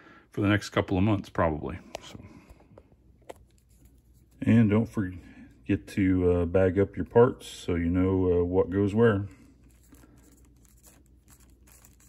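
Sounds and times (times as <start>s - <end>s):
marker scratching on plastic: 9.6s - 12.0s
plastic bag crinkling: 9.6s - 12.0s.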